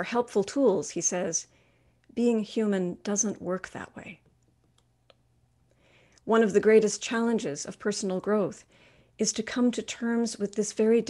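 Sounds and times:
soft breath: 1.5s - 2.0s, 5.7s - 6.2s, 8.6s - 9.2s.

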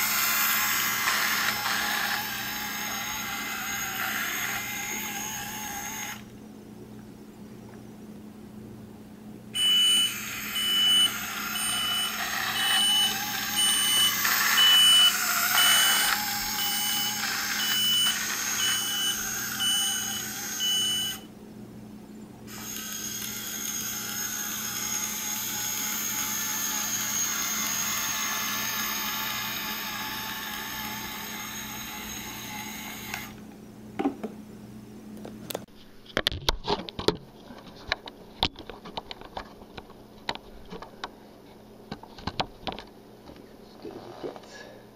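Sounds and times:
toy motors and gears whirring: 0.0s - 6.3s, 9.6s - 21.3s, 22.5s - 33.4s.

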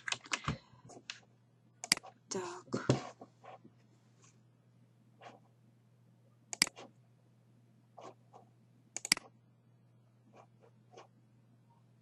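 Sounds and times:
low steady hum: 0.0s - 12.0s
computer mouse double click: 6.5s - 6.8s, 9.0s - 9.3s.

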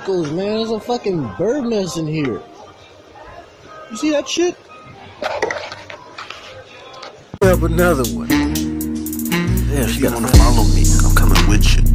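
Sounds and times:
person speaking: 9.6s - 11.9s.

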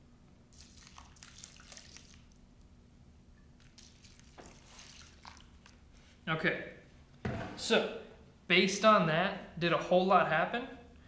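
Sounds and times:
water trickling onto dirt: 0.5s - 2.4s, 3.6s - 5.8s.

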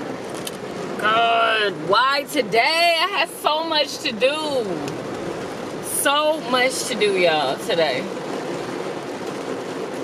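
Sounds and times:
heavy rain on a car roof: 0.0s - 10.0s.

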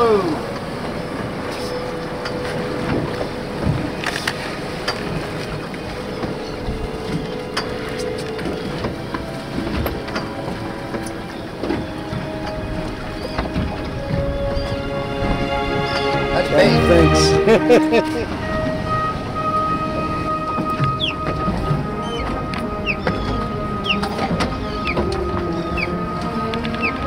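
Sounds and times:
boat engine: 0.0s - 27.0s
choppy water: 0.0s - 27.0s.

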